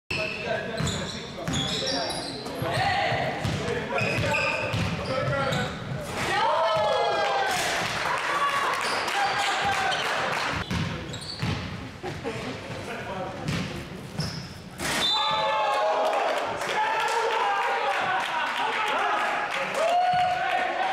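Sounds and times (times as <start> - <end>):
sneakers squeaking: 0.1 - 6.1, 8.8 - 15.4
basketball bouncing: 3.4 - 5.1, 10.6 - 11.8, 13.4 - 14.3.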